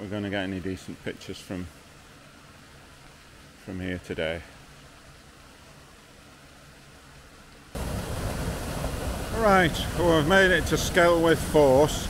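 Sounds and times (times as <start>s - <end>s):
waterfall rushing: 7.7s - 12.0s.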